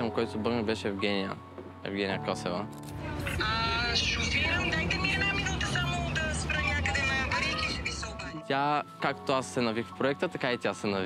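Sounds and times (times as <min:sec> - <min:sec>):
people talking indistinctly: 0:00.0 - 0:11.0
steady low rumble: 0:03.0 - 0:08.2.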